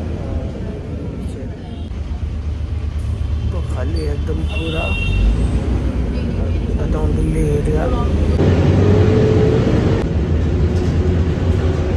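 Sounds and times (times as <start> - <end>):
bus engine and road rumble: 0.0 - 11.9.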